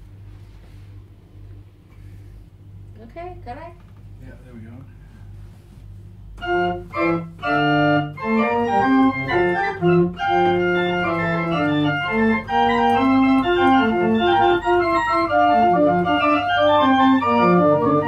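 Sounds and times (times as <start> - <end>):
steady low organ tone: 4.3 - 18.0
pipe organ chords: 6.2 - 18.0.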